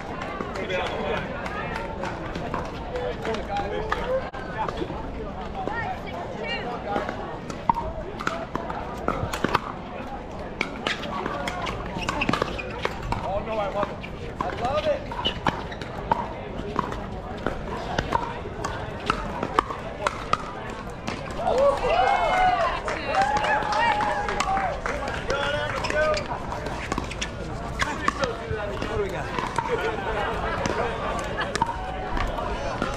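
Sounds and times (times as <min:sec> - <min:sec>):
voices and chatter: 0:00.0 - 0:32.9.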